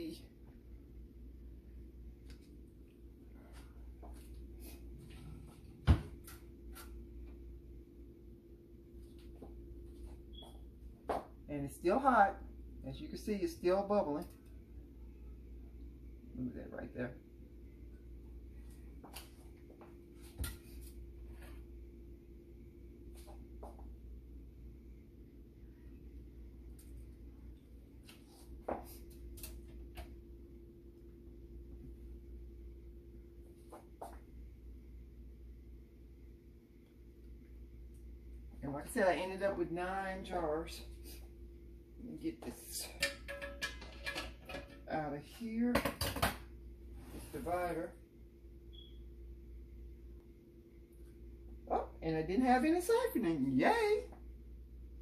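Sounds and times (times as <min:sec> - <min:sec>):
steady low hum: 0:00.0 - 0:55.0
kitchen handling clicks and rustles: 0:42.9 - 0:44.9.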